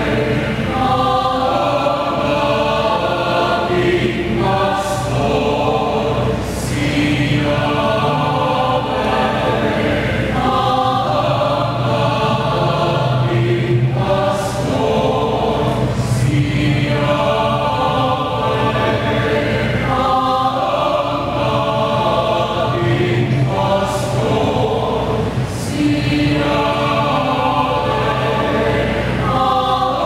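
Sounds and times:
mixed choir singing: 0.0 - 30.0.

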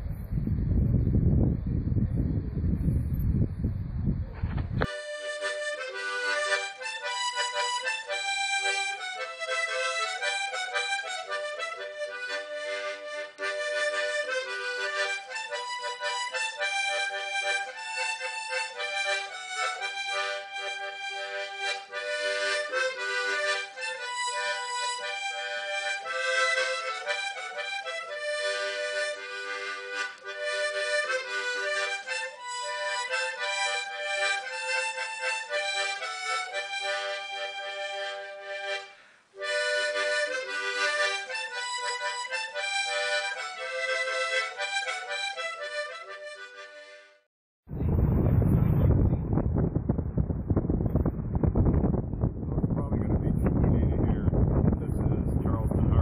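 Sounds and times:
free-reed instrument melody: 4.4 - 47.3.

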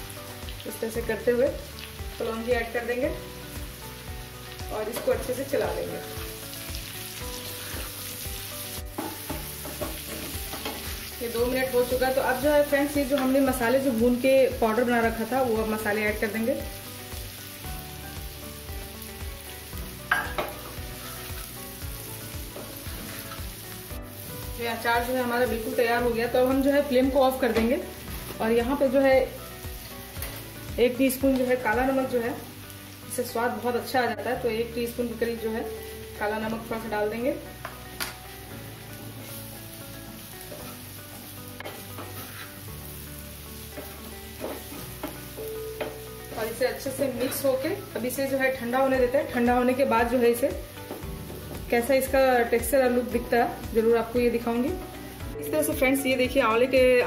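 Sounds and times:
food sizzling in hot oil: 0.0 - 57.0
soft background music: 0.0 - 57.0
spatula scraping in a pan: 40.4 - 43.0
wooden spatula scraping pan: 41.6 - 42.6.

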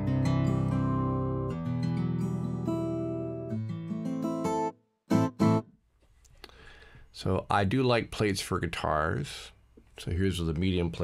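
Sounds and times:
acoustic guitar picked chords: 0.0 - 5.8.

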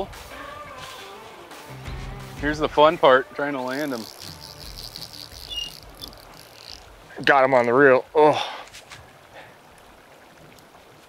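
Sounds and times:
insects trilling: 3.6 - 7.2
higher insect chirp: 3.7 - 7.1.

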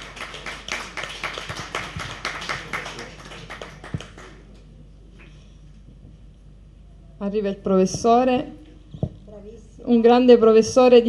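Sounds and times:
people clapping: 0.0 - 4.7.

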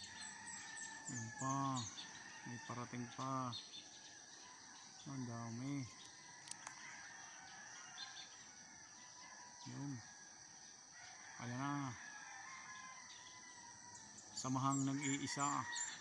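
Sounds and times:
distant bird calls: 0.0 - 10.4, 11.1 - 16.0.

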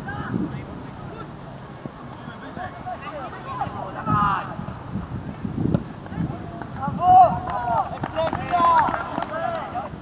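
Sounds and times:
young players shouting: 2.4 - 4.6, 6.3 - 9.9.

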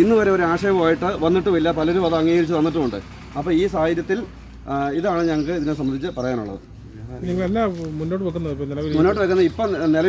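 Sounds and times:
man speaking: 4.7 - 10.0.

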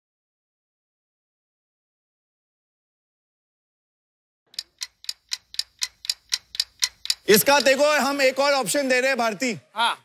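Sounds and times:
clock ticking: 4.5 - 9.2.

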